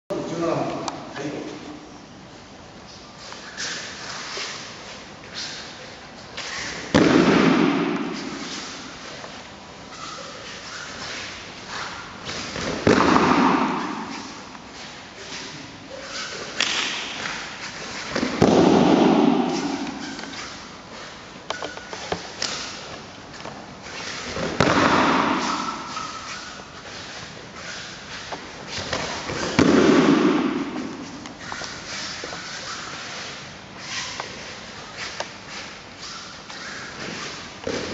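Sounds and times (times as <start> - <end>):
rustling and sliding: 7.8 - 37.9
body slapping foam mat: 16.6 - 20.0, 24.2 - 26.3
body slapping onto mats: 24.3 - 25.9.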